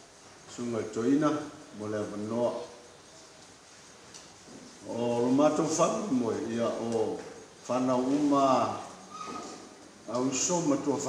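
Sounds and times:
man speaking amplified: 0:00.5 - 0:02.8, 0:04.8 - 0:08.9, 0:10.1 - 0:11.0.

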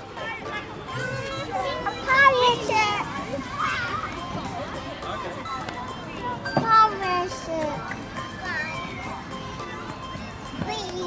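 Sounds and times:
young children playing and calling: 0:00.0 - 0:11.0.

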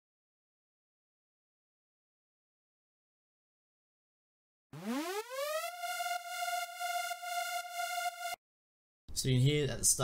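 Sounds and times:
synth lead pitch swoop: 0:04.8 - 0:08.4.

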